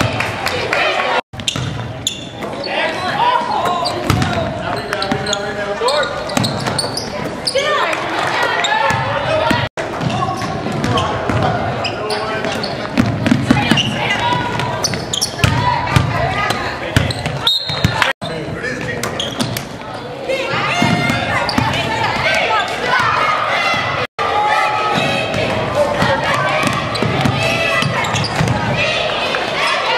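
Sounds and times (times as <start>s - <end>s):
crowd shouting and talking: 0.0s - 29.9s.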